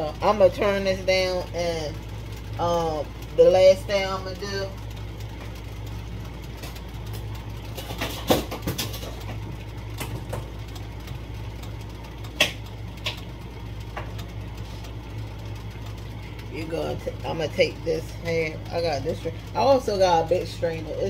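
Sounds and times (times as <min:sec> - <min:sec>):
steady low hum: 0:00.0 - 0:21.0
clinks and knocks: 0:07.7 - 0:10.5.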